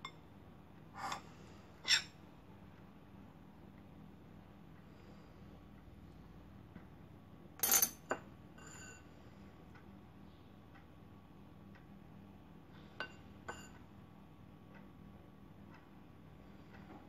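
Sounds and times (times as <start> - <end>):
metal spoon clinking against bowl: 7.6 - 8.0.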